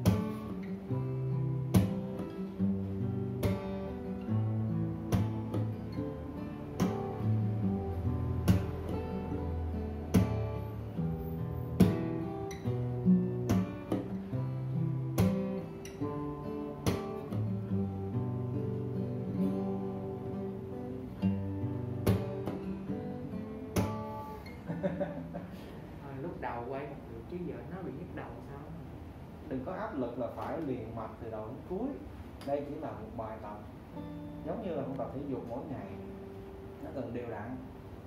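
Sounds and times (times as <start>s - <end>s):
acoustic guitars strumming: 0.0s - 27.0s, 30.0s - 38.0s
person laughing: 24.5s - 25.9s.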